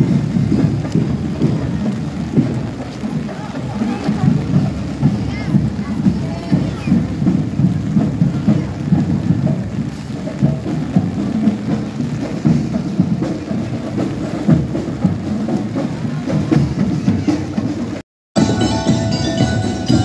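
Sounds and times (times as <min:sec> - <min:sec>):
heavy rain on a street: 0:00.0 - 0:18.0
marching band drumming and music: 0:00.0 - 0:20.0.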